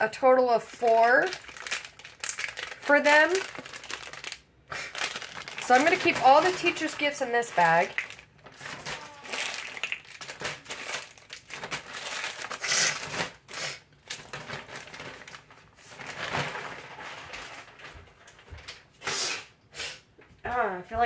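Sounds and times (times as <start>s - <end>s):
packaging crinkling and rustling: 0.6s - 19.0s.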